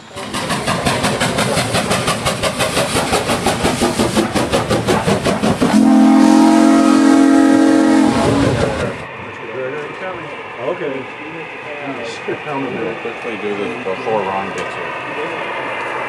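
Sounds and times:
steam locomotive exhaust chuffs: 0.0s - 16.0s.

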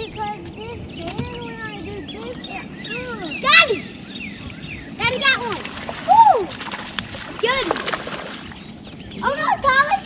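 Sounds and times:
excited voice calls: 2.8s - 6.5s
fish splashing water: 2.8s - 8.8s.

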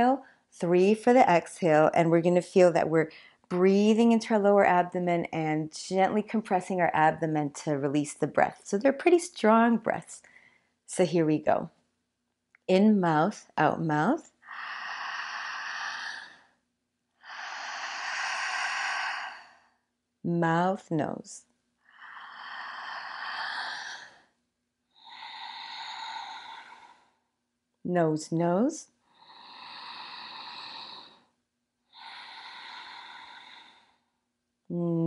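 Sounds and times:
woman breathing through her mouth: 14.4s - 16.6s, 17.2s - 19.9s, 21.8s - 27.3s, 29.0s - 34.2s.

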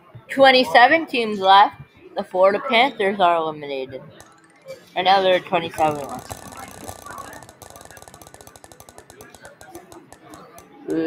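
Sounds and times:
spinner wheel ticking: 4.2s - 11.0s.

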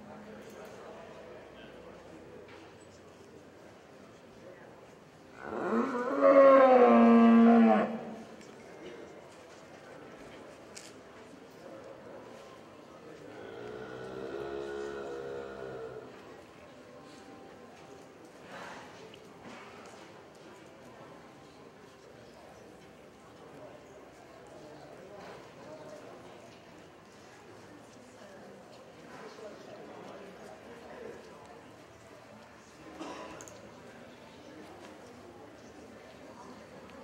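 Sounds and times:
murmur of people chatting: 0.0s - 37.0s
cow mooing: 5.4s - 8.2s, 13.4s - 16.0s.

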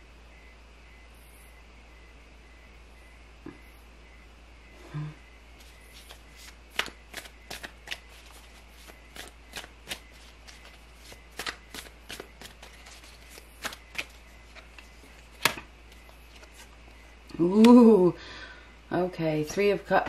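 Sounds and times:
cards being shuffled: 5.6s - 16.8s.

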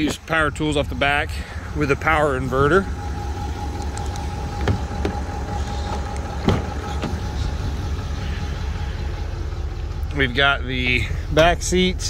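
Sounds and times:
steady low rumble: 0.0s - 12.0s
car door clicks and knocks: 4.6s - 5.2s, 6.4s - 7.1s.

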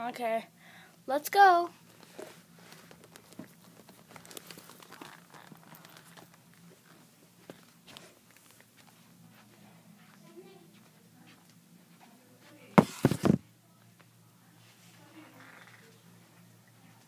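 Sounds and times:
low steady hum: 0.0s - 17.0s
toys and camera rustling and clicking: 1.8s - 8.9s, 12.8s - 13.4s.

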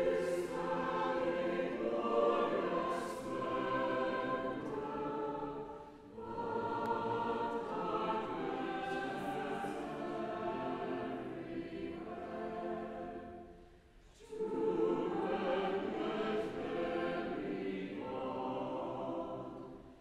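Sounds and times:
church choir singing: 0.0s - 20.0s.

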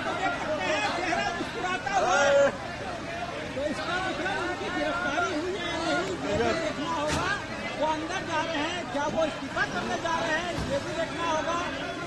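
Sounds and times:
overlapping voices of small crowd: 0.0s - 12.0s.

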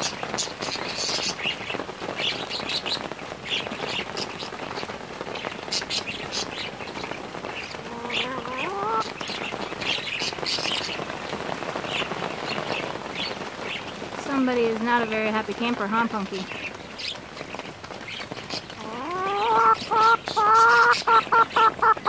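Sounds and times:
steady rain falling: 0.0s - 22.0s.

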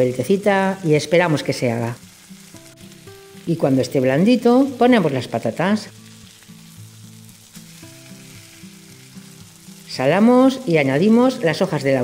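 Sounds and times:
potatoes sizzling in oil: 0.0s - 12.0s
soft background music: 0.0s - 12.0s.

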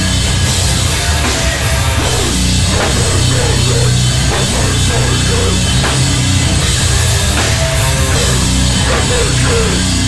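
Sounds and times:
bass guitar: 0.0s - 10.0s
drum kit with cymbals: 0.0s - 10.0s
electric guitar: 0.0s - 10.0s.

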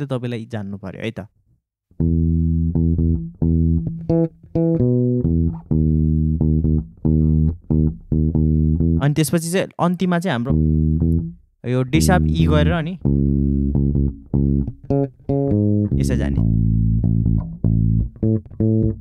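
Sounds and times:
electric bass guitar plucked notes: 1.9s - 9.2s, 10.4s - 19.0s
person speaking: 9.0s - 10.6s, 11.6s - 13.1s, 15.9s - 16.5s.

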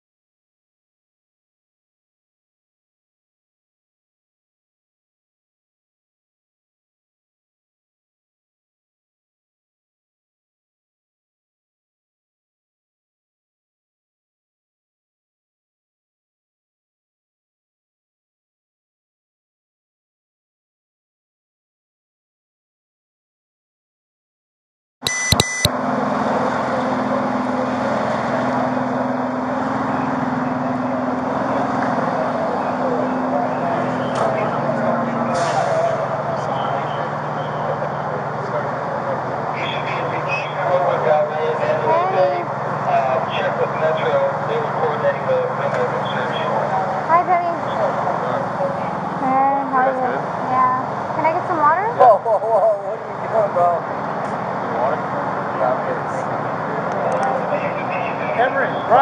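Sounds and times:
noisy street background: 25.0s - 59.0s
electronic beep: 25.1s - 25.7s
people talking: 25.1s - 59.0s
idling vehicle engines: 25.7s - 59.0s.

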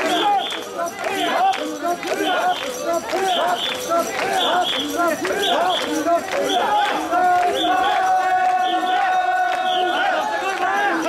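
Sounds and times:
crowd chanting in rhythm: 0.0s - 11.0s.

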